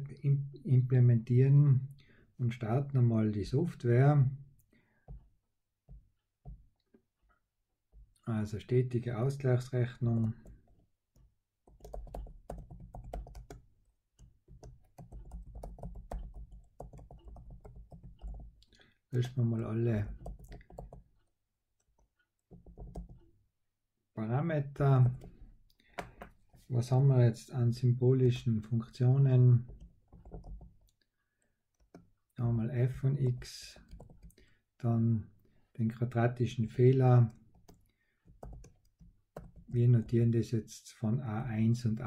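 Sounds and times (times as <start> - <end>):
computer keyboard typing: 10.2 - 19.4, 20.0 - 21.2, 21.8 - 23.3, 29.7 - 31.0, 31.8 - 32.1, 33.2 - 34.4, 37.5 - 40.2.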